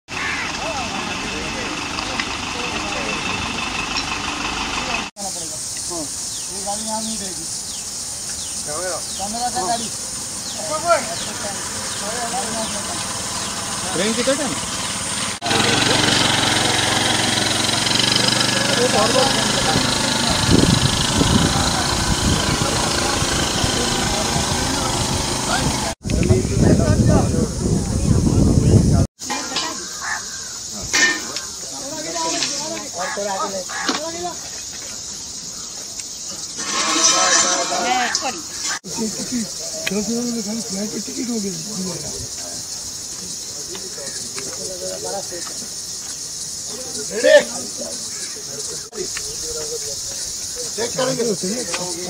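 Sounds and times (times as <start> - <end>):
crowd chatter: 0.1 - 5.1, 15.4 - 52.0
truck engine running: 0.2 - 5.1, 10.0 - 26.0.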